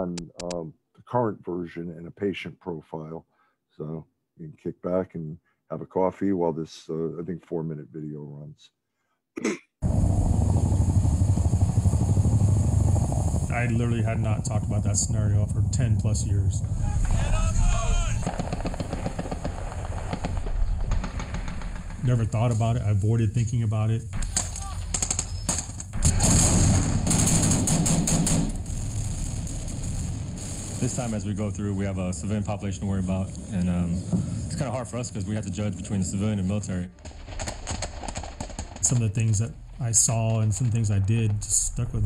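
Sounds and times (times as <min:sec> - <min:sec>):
helicopter rotor running: 0:09.8 - 0:16.2
sharp gunshots: 0:16.6 - 0:22.9, 0:24.1 - 0:32.0, 0:37.0 - 0:39.6
rapid automatic gunfire: 0:17.9 - 0:22.5, 0:24.2 - 0:31.4, 0:37.0 - 0:39.3.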